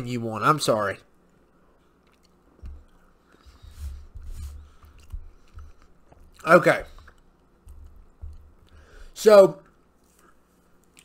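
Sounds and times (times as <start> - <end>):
person chewing noodles: 1.2 - 3.6, 4.4 - 11.0.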